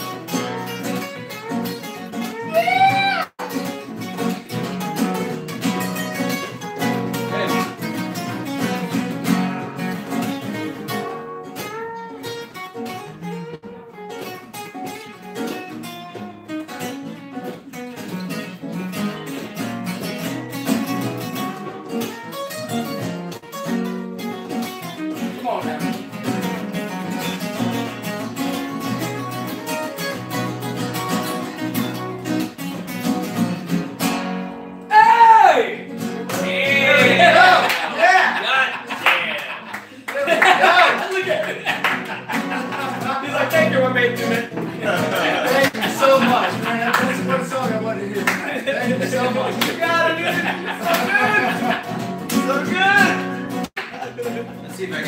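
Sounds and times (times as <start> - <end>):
flamenco acoustic guitars: 0.0 - 55.0
loud voice calling out: 2.4 - 3.3, 34.9 - 39.7, 48.9 - 51.7, 52.4 - 53.3.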